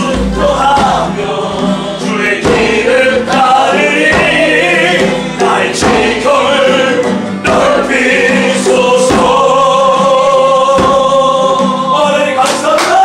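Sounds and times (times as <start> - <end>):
group singing gospel worship song: 0.0 - 13.0
musical accompaniment: 0.0 - 13.0.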